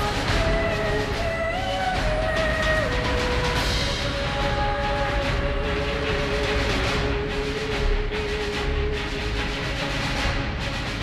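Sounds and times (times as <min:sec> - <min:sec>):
film soundtrack held notes: 0:00.0 - 0:11.0.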